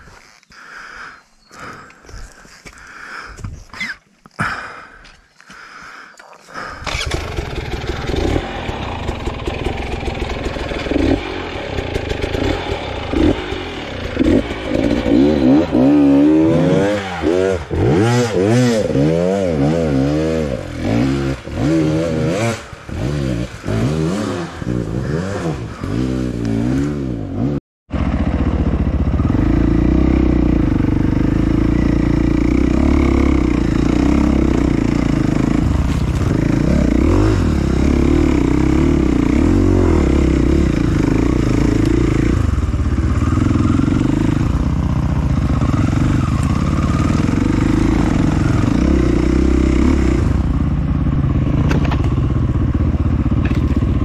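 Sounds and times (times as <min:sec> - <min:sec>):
dirt bike engine revving: 0:06.5 - 0:54.0.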